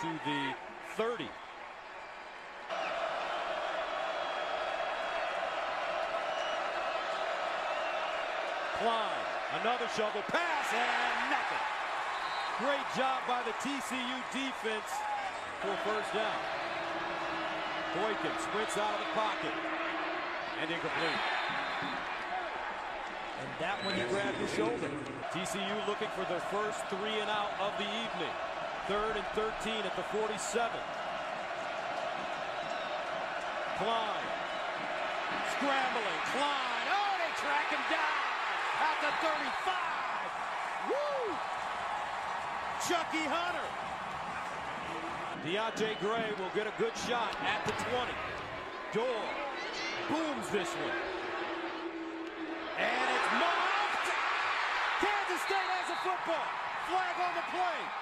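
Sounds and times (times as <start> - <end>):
stadium crowd voices: 0.0 - 58.0.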